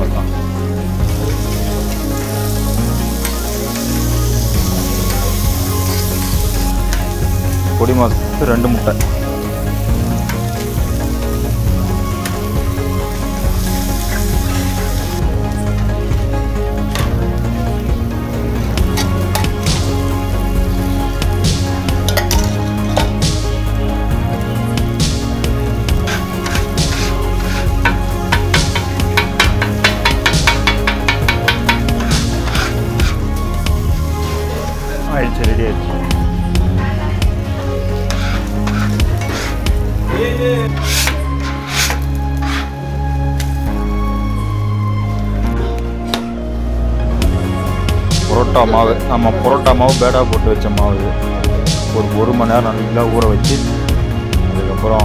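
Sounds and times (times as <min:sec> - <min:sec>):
background music: 0:00.0 - 0:55.0
egg frying on a griddle: 0:26.1 - 0:33.2
metal spatula striking a griddle: 0:27.8 - 0:32.7.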